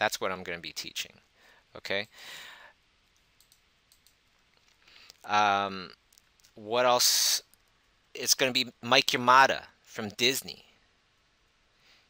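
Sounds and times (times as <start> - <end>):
breath at a microphone: 1.3 - 2.8, 4.8 - 5.2, 11.7 - 12.0
faint clicks: 3.2 - 5.3.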